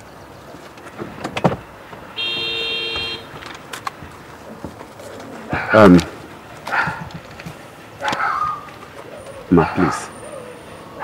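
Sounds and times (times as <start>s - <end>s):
two-tone car horn honk: 2.1s - 3.4s.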